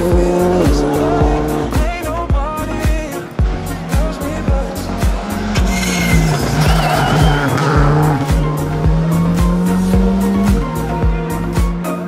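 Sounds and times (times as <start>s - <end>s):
background music with steady beat: 0.0s - 12.0s
tyres squealing: 4.2s - 9.4s.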